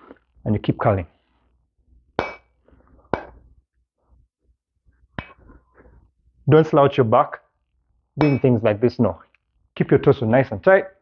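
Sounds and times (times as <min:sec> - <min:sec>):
metallic dumbbell clanks: 0:08.2 - 0:08.6.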